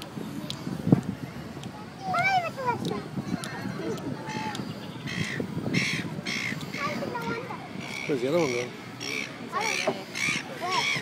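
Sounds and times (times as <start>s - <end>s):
people's voices: 0.0s - 11.0s
bird harsh calls: 4.2s - 7.1s, 7.8s - 11.0s.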